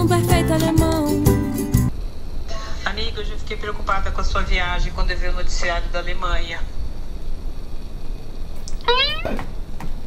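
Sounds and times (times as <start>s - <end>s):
high-pitched rising vocal call: 8.8s - 9.4s.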